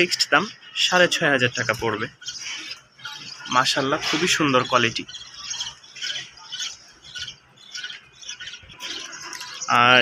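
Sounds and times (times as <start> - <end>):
pigeons chirping: 0.0 - 10.0.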